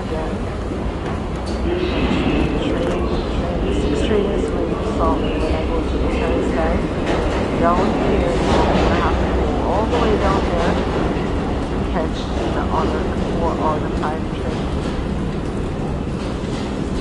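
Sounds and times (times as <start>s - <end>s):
people's voices: 0.0s - 0.5s, 1.5s - 11.0s, 11.8s - 14.8s
train rumble: 0.0s - 17.0s.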